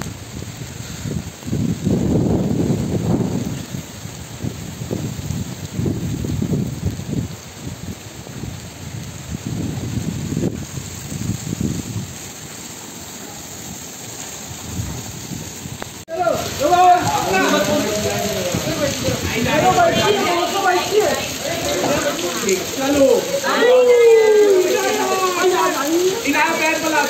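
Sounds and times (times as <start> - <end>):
wind buffeting microphone: 0.0 - 12.7, 13.6 - 23.4
rain hissing: 0.0 - 27.0.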